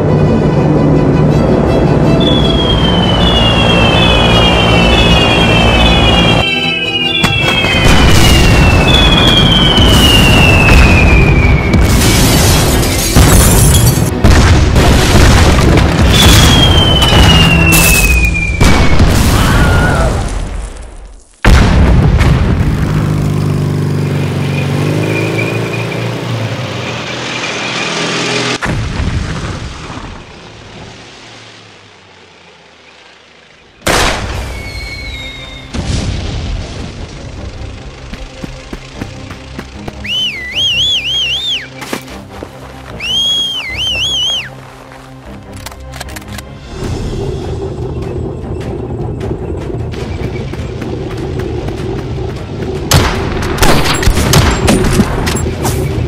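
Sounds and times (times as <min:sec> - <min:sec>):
low background music: 0:00.0 - 0:19.6, 0:34.0 - 0:56.0
falling high whistle: 0:02.2 - 0:07.8, 0:34.5 - 0:35.8, 0:40.0 - 0:41.8, 0:43.0 - 0:44.5
explosion booms and rumble: 0:07.6 - 0:20.8, 0:21.4 - 0:23.1, 0:28.6 - 0:30.3, 0:35.7 - 0:37.2, 0:46.7 - 0:55.3
person whistling: 0:40.0 - 0:41.7, 0:43.0 - 0:44.5.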